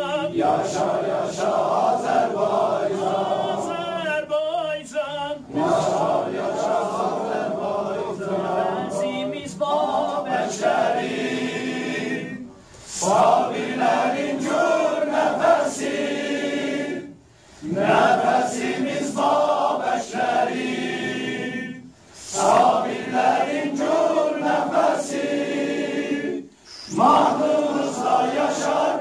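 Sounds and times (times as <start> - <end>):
men singing in unison: 0.0 - 12.4, 17.7 - 29.0.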